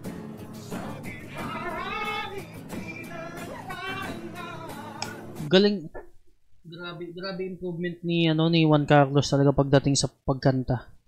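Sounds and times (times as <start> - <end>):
acoustic guitar: 0.0 - 5.5
drums: 0.0 - 5.5.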